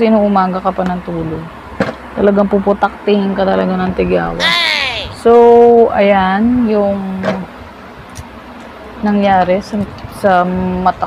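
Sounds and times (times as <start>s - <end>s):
low background noise: 0.0s - 11.0s
woman's voice drawn-out syllable: 4.4s - 5.3s.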